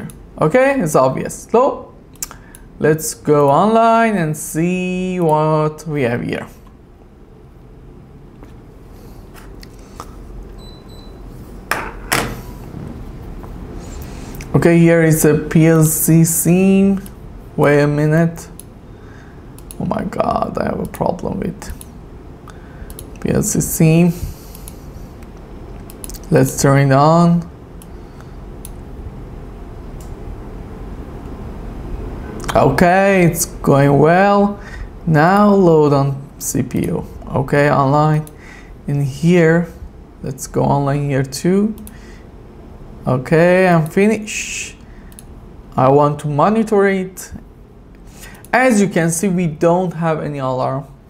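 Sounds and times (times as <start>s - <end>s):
low room hum: 0.0s - 51.0s
computer mouse clicks: 19.6s - 19.8s, 22.9s - 23.2s, 45.1s - 45.3s
faint clicks: 19.6s - 19.8s, 21.7s - 23.2s, 45.1s - 45.3s.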